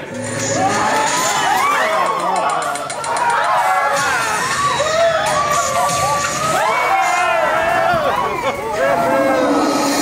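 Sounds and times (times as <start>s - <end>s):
riders screaming and yelling: 0.0s - 10.0s.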